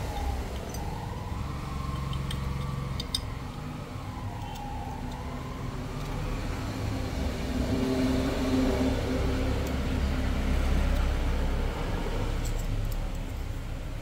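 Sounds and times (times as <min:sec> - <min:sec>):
vehicle engine rumbling: 0:00.0 - 0:14.0.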